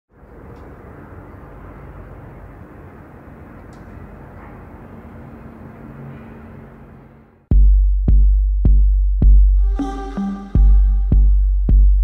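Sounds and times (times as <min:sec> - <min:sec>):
faint hum: 0:09.6 - 0:12.0.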